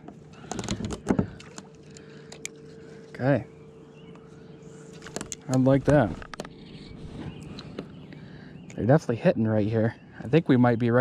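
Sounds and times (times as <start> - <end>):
fishing tackle clicks and knocks: 0.0 - 2.6, 5.0 - 6.5.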